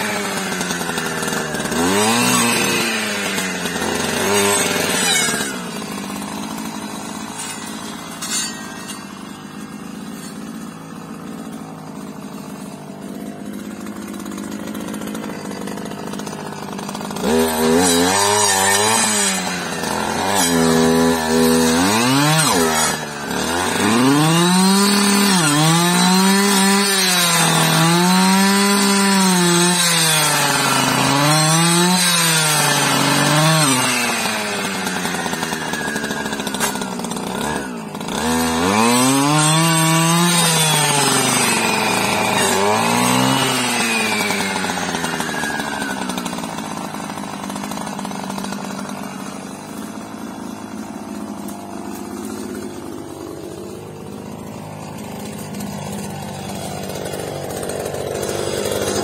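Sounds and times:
blade cutting brush: 0.0s - 59.0s
clearing saw engine revving: 0.0s - 59.0s.

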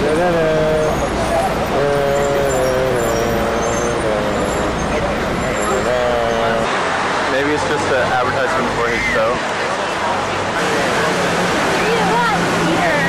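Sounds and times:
bus engine drone: 0.0s - 13.0s
traffic low rumble: 0.0s - 13.0s.

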